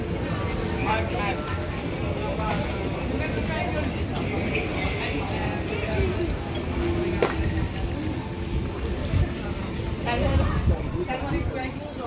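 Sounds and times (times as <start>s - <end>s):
busy street murmur: 0.0s - 12.0s.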